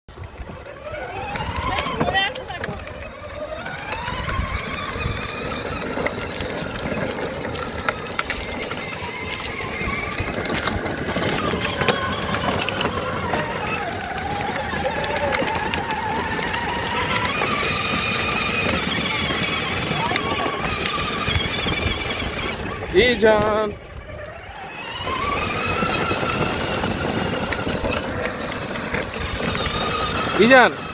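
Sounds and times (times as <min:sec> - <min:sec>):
electric motors whining: 0:00.1 - 0:30.9
plastic wheels rolling on concrete: 0:00.1 - 0:30.9.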